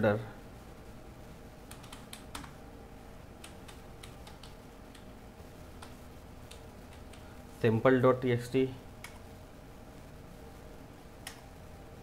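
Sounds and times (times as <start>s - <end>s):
computer keyboard typing: 1.7s - 2.6s, 3.4s - 5.1s.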